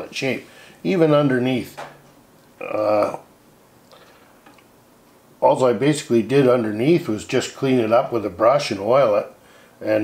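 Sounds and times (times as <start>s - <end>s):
man saying uh: 2.6s - 3.2s.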